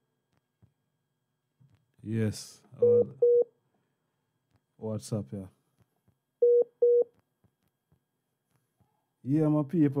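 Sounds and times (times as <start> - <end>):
telephone line beeps: 2.8 - 3.5, 6.4 - 7.1.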